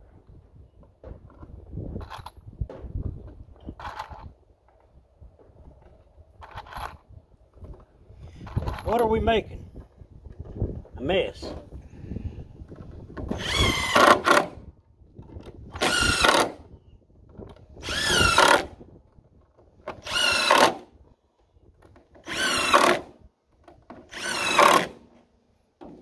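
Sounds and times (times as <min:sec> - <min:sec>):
drill driving screws into wood: 0:13.2 - 0:14.7, 0:15.7 - 0:16.7, 0:17.8 - 0:18.8, 0:19.8 - 0:21.0, 0:21.9 - 0:25.2.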